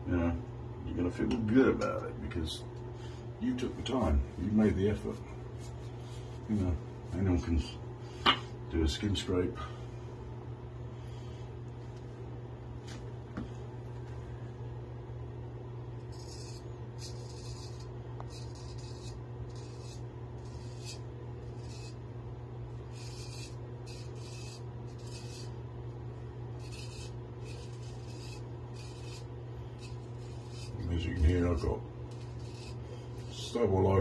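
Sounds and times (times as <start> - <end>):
razor scraping stubble: 16.0 - 22.1, 22.7 - 34.0.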